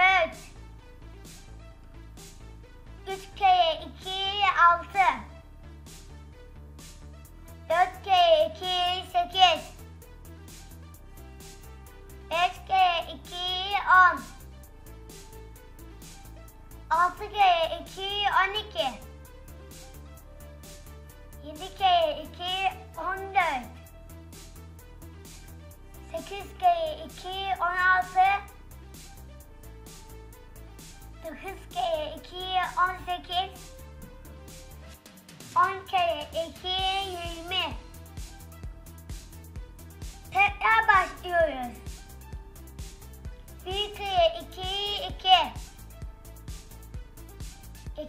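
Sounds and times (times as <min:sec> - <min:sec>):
upbeat children's music: 0:00.0 - 0:48.0.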